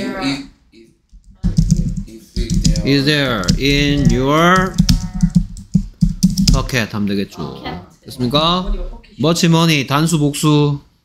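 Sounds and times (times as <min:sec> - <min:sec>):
computer keyboard typing: 0:01.1 - 0:06.8
person speaking: 0:01.3 - 0:10.8.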